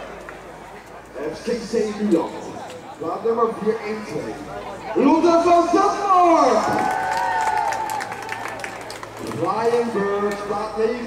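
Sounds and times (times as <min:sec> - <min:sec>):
spectators applauding and cheering: 0:06.4 - 0:10.2.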